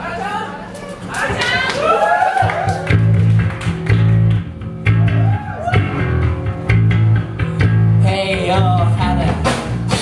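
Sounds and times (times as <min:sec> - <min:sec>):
electric guitar: 0:02.6 - 0:10.0
electric bass guitar riff: 0:02.8 - 0:10.0.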